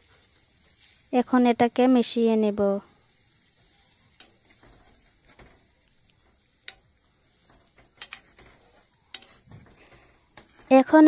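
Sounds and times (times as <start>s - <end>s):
faint steady hiss: 0.0s - 11.0s
spatula clicking on pan: 4.1s - 10.7s.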